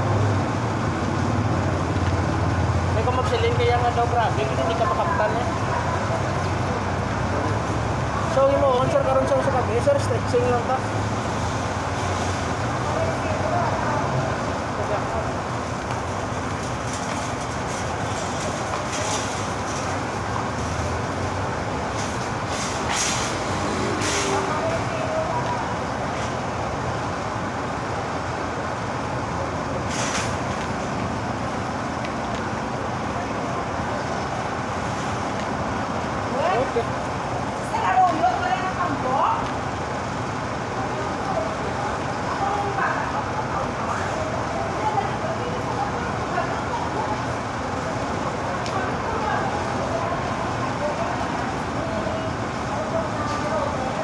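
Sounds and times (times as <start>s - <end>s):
city street traffic: 0.0s - 54.0s
faint voices: 40.6s - 54.0s.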